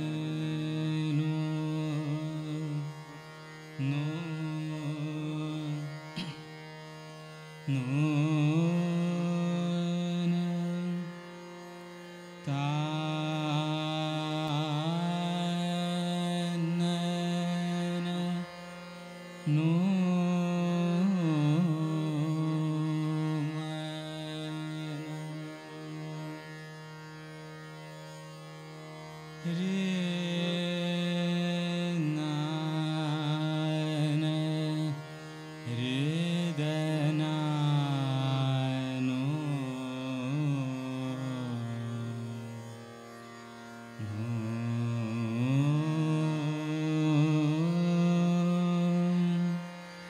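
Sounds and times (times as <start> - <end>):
man singing classical vocals: 0.0 - 6.8, 7.6 - 11.6, 12.4 - 26.5, 29.4 - 42.6, 44.0 - 50.0
harmonium: 0.0 - 50.0
tanpura drone: 0.0 - 50.0.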